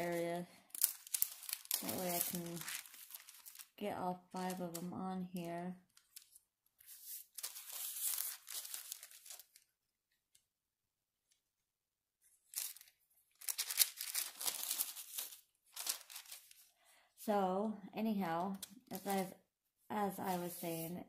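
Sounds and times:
parchment paper rustling: 0.0s - 10.5s, 12.2s - 16.9s, 18.4s - 19.4s, 20.1s - 21.0s.

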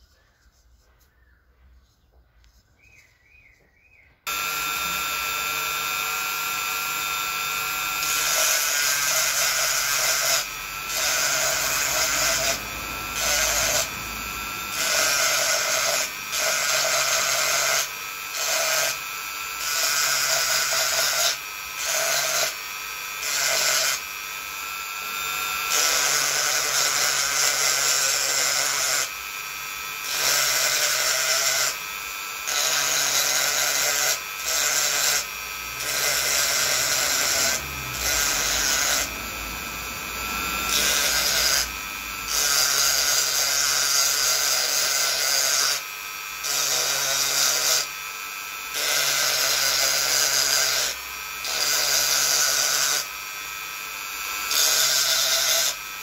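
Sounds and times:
rotary tool whine: 4.3s - 56.0s
bit grinding into coconut shell: 30.1s - 45.8s.

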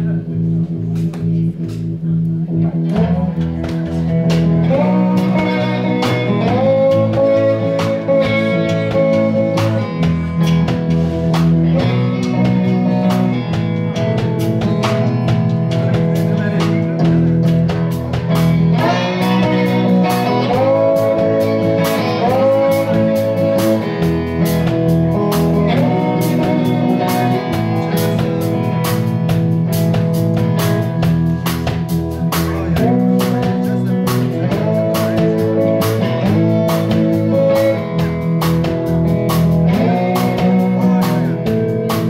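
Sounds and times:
drum kit steady beat: 0.0s - 42.0s
electric bass: 0.0s - 42.0s
electric guitars bending notes: 0.0s - 42.0s.

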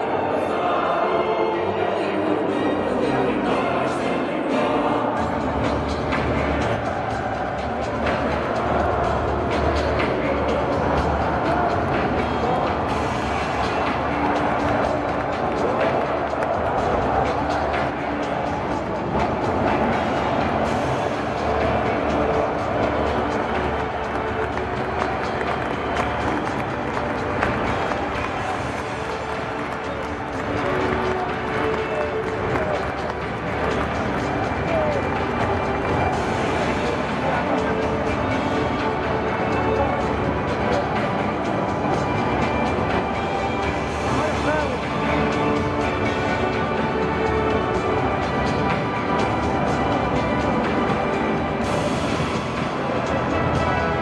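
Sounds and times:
music playing: 0.0s - 54.0s
stadium crowd roaring: 0.0s - 54.0s.

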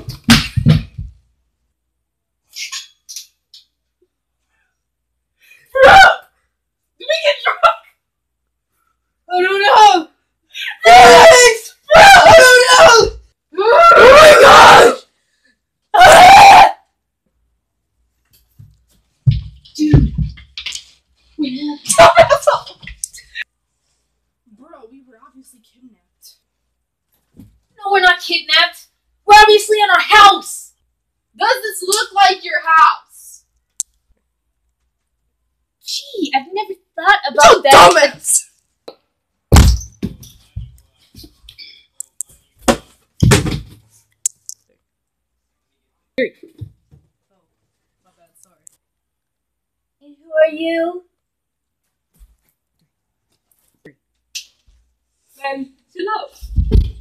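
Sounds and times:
girl screaming: 5.8s - 6.2s, 10.7s - 15.0s, 16.0s - 16.8s.

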